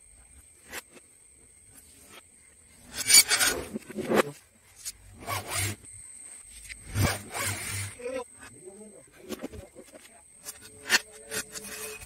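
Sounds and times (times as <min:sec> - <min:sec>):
materials rubbing and scraping: 0:01.7 - 0:08.5, 0:09.1 - 0:12.0.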